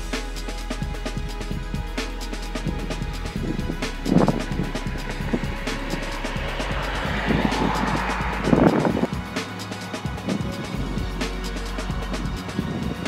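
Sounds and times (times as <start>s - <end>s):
background music with steady beat: 0.0s - 13.0s
road vehicle passing: 0.0s - 13.0s.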